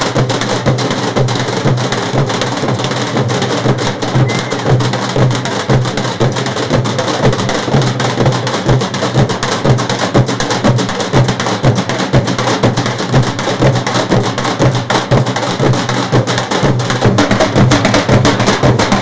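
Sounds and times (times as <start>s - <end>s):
steel drums beaten with sticks: 0.0s - 19.0s.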